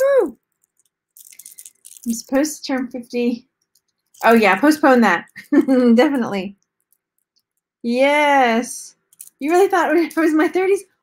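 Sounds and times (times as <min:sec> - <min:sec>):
person saying woohoo: 0:00.0 - 0:00.4
beads clicking and rustling: 0:00.0 - 0:07.8, 0:08.9 - 0:10.7.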